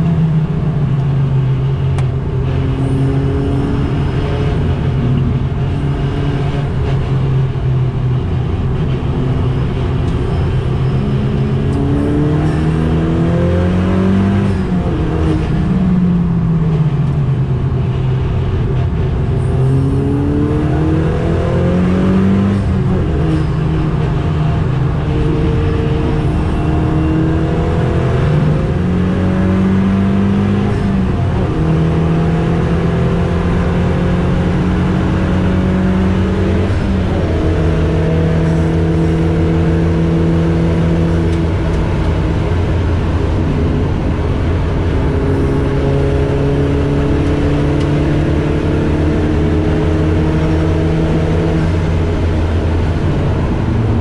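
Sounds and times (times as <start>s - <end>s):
car engine accelerating through gears: 0.0s - 54.0s.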